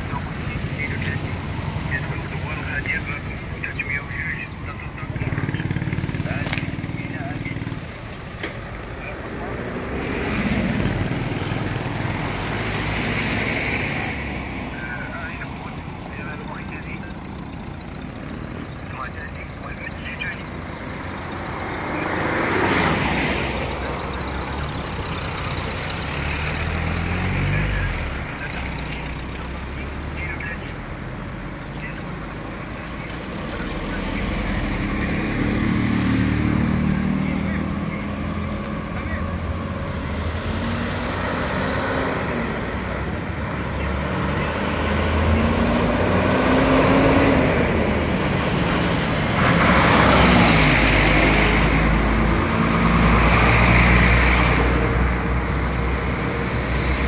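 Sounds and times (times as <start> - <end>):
car engines passing: 0.0 - 57.0
heavy diesel truck passing: 0.0 - 57.0
motorcycle engines passing: 0.0 - 57.0
steady low traffic rumble: 0.0 - 57.0.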